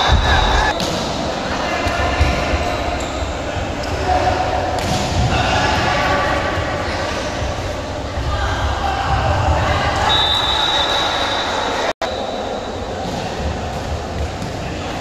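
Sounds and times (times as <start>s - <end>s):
voices echoing in a hall: 0.0s - 15.0s.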